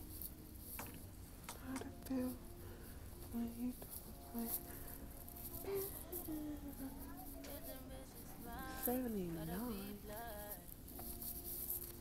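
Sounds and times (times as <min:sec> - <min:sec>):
low background noise: 0:00.0 - 0:12.0
faint indistinct speech: 0:03.2 - 0:10.7.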